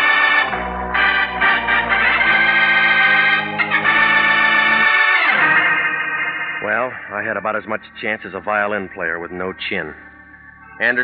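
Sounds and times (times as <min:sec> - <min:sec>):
organ chord: 0:00.0 - 0:11.0
man narrating: 0:06.6 - 0:10.1, 0:10.8 - 0:11.0.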